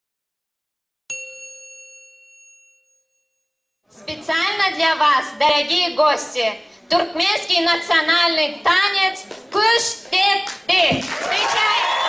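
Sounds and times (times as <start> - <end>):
metallic chime ding: 1.1 - 3.5.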